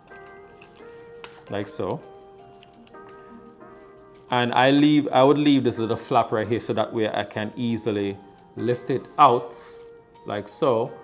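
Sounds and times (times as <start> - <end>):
soft music of held chords: 0.0 - 11.0.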